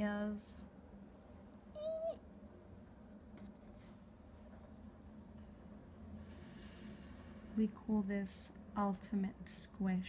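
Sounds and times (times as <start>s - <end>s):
cat mewing: 1.7s - 2.2s.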